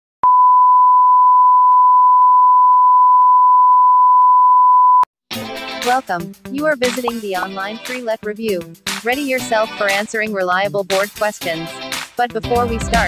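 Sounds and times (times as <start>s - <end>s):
steady electronic beep: 0.2s - 5.1s.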